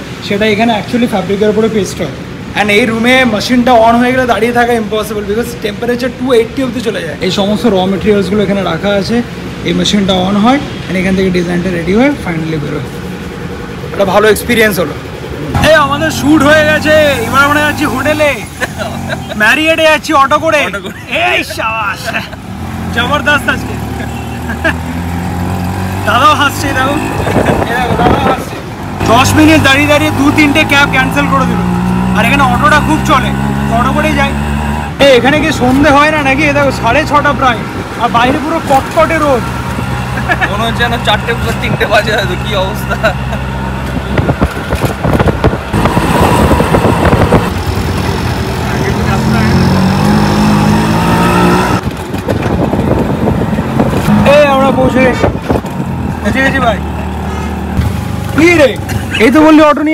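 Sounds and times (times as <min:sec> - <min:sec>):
rickshaw engine running: 0:11.6 - 0:59.9
man speaking: 0:13.9 - 0:24.2.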